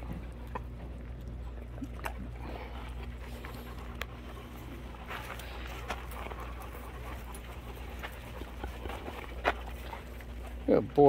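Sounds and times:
dogs panting: 0.0 - 11.0
paws scuffing on gravel: 2.7 - 11.0.

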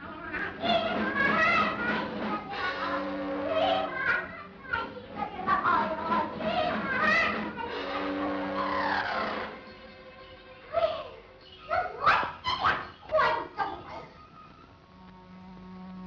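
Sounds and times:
shrill swooping cries: 0.0 - 14.8
low sustained note: 7.6 - 11.6.

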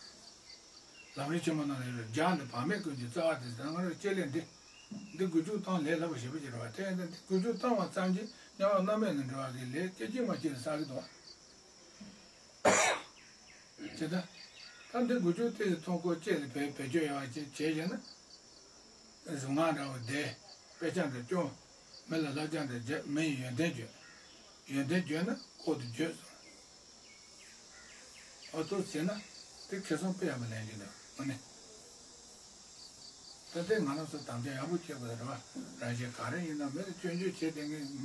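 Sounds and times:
crickets chirping: 0.0 - 38.0
man speaking: 1.2 - 4.5, 5.2 - 11.1, 15.0 - 18.0, 19.3 - 23.9, 24.7 - 26.4, 28.6 - 31.4, 33.5 - 38.0
person coughing: 12.6 - 13.1.

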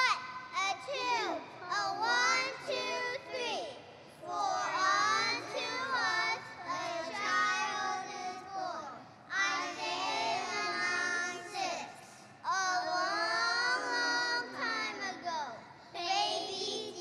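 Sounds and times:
young children singing in unison: 0.0 - 17.0.

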